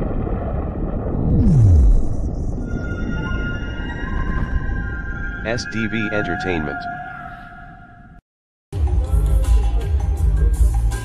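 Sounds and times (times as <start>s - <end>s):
deep rumble: 0.0s - 6.4s
held electronic tones: 2.7s - 8.2s.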